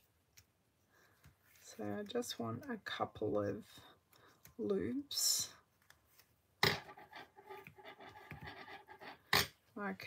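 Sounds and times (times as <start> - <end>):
soft rubbing and scratching: 0.8 - 4.7, 5.6 - 9.3.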